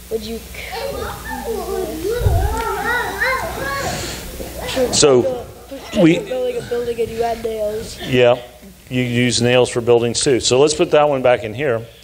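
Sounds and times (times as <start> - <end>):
young child vocalizing: 0.2 - 8.8
dull low bump: 2.2 - 2.6.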